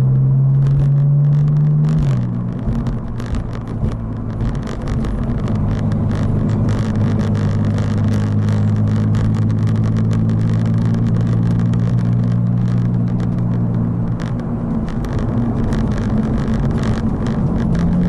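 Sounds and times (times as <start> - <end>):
car engine droning: 0.0 - 18.0
road and tyre noise: 0.0 - 18.0.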